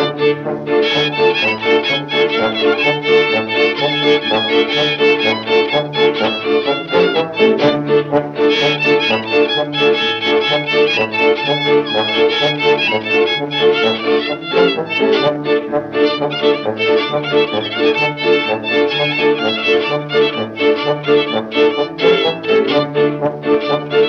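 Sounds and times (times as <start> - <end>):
fiddle playing a tune: 0.0 - 24.0
steady beat: 0.8 - 15.6.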